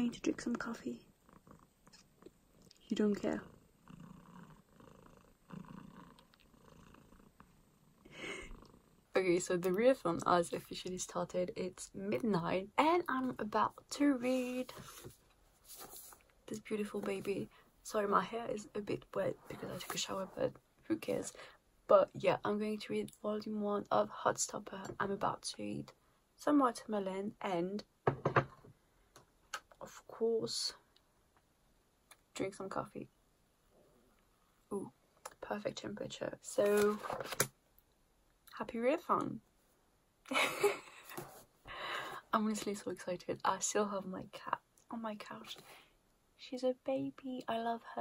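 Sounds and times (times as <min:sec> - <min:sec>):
cat purring: 0:00.0 - 0:09.3
objects knocking on hard surface: 0:28.0 - 0:28.7.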